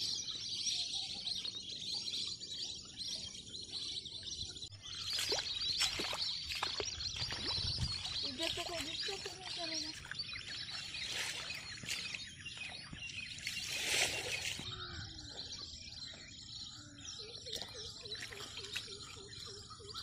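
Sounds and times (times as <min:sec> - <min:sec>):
birds chirping and calling: 0:00.0 - 0:20.0.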